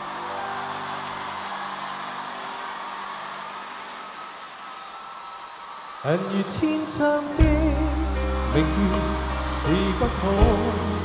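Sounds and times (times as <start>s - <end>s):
ballad accompaniment notes: 6.6s - 11.0s.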